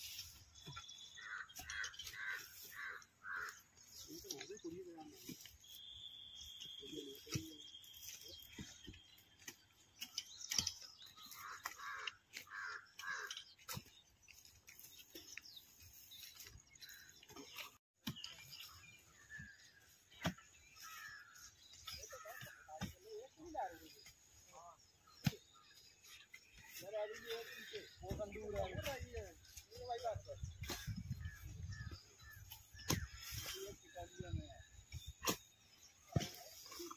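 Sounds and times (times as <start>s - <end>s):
birds calling: 0.0s - 36.9s
digging tools striking dry soil: 0.0s - 36.9s.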